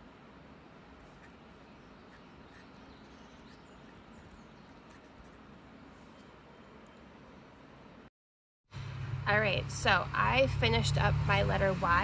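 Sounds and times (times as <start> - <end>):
faint outdoor background noise: 0.0 - 8.1, 8.7 - 12.0
bird chirps: 1.2 - 5.0.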